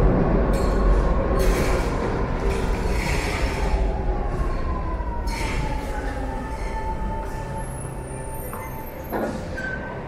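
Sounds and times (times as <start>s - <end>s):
train slowing with whine: 0.0s - 10.0s.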